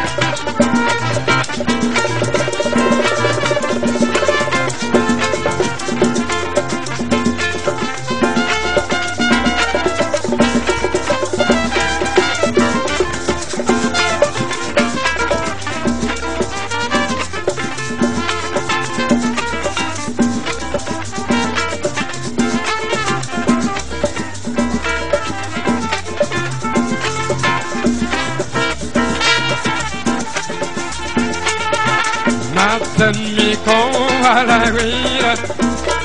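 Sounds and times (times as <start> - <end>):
latin dance band music: 0.0 - 36.0.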